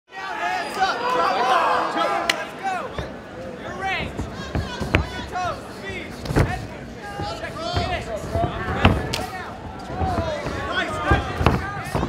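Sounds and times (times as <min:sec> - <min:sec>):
crowd chattering: 0:00.1 - 0:12.0.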